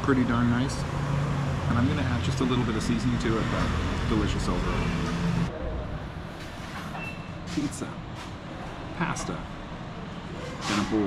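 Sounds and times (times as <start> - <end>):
road traffic rumble: 0.0 - 11.0
man talking: 1.6 - 5.0, 7.5 - 8.1, 9.0 - 9.5, 10.6 - 11.0.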